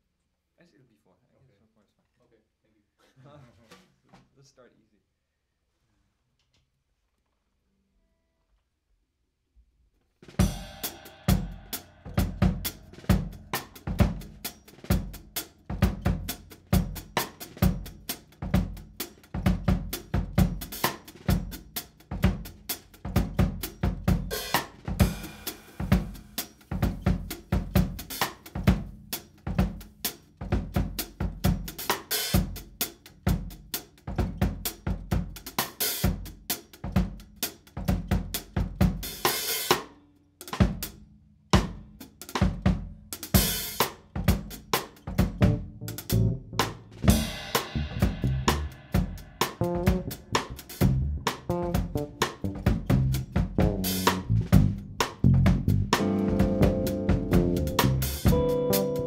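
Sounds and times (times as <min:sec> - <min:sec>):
drum kit groove: 0:10.2 - 0:59.0.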